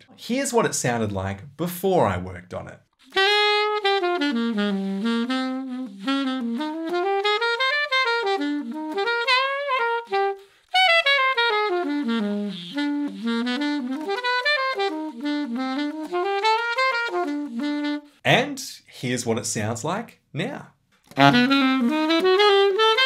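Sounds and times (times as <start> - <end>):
man's voice: 0.1 - 2.8, 18.3 - 21.4
saxophone playing quick melody: 3.0 - 18.2, 21.1 - 23.0.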